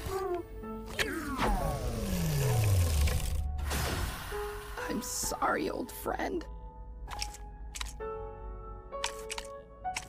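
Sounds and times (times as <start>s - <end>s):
low drone: 1.0s - 4.9s.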